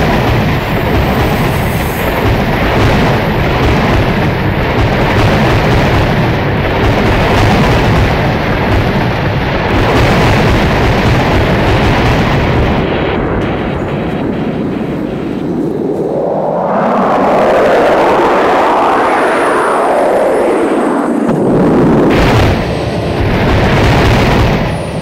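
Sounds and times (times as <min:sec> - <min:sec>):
rumbling booming sound effect: 0:00.0 - 0:17.5, 0:20.5 - 0:25.0
rising and falling whoosh: 0:14.2 - 0:25.0.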